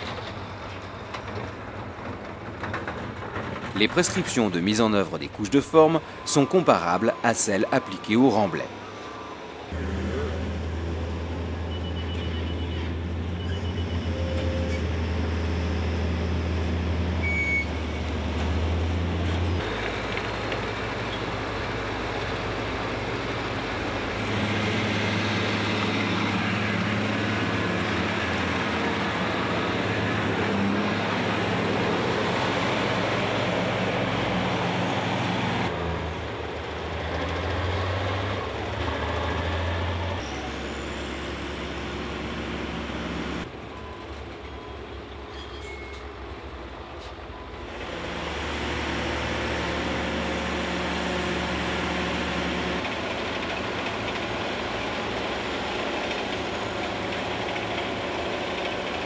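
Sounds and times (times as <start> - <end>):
heavy machine diesel engines: 0.0 - 59.0.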